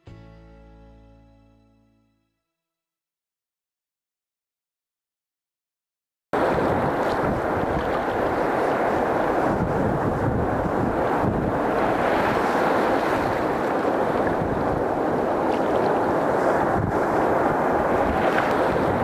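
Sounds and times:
surf breaking on rocks: 6.4s - 19.0s
wind buffeting microphone: 6.4s - 19.0s.

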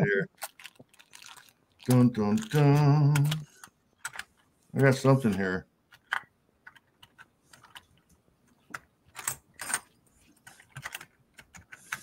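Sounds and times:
small hard objects clicking: 0.4s - 3.4s.

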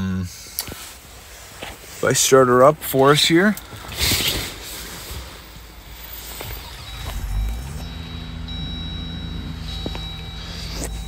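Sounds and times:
car engine running hum: 5.2s - 11.0s
thin high tone: 6.0s - 11.0s.

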